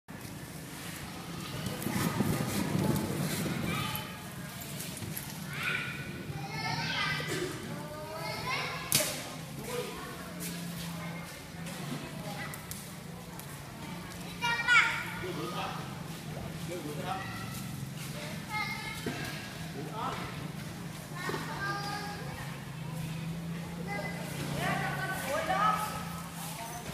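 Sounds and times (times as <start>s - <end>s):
children calling and chattering: 0.2s - 26.9s.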